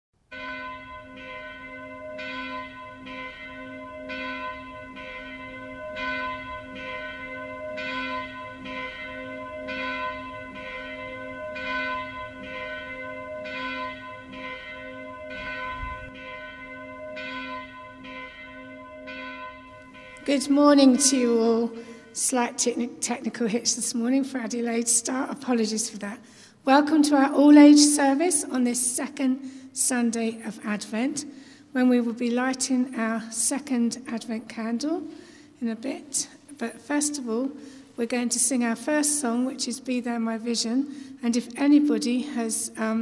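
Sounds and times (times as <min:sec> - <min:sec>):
church bell ringing: 0:00.3 - 0:25.6, 0:40.9 - 0:43.0.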